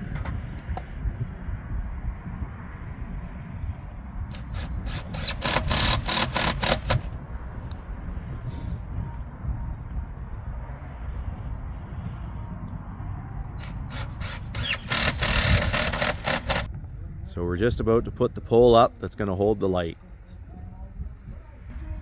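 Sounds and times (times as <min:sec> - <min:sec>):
steady low rumble: 0:00.0 - 0:06.1, 0:07.0 - 0:14.6, 0:15.2 - 0:22.0.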